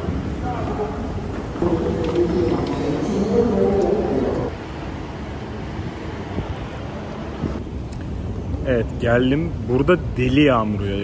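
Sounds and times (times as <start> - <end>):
train station hall background noise: 0.0 - 11.0.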